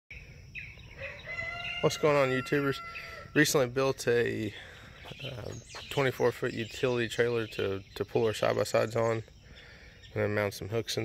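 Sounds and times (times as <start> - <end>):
small bird chirps: 0.1 - 1.9, 4.1 - 11.0
rooster crowing: 0.9 - 3.4
man speaking: 3.4 - 9.2, 10.2 - 11.0.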